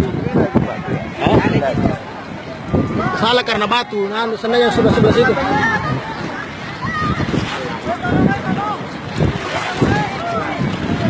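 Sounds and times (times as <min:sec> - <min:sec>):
choppy sea: 0:00.0 - 0:11.0
wind buffeting microphone: 0:00.0 - 0:11.0
people shouting: 0:04.6 - 0:07.4.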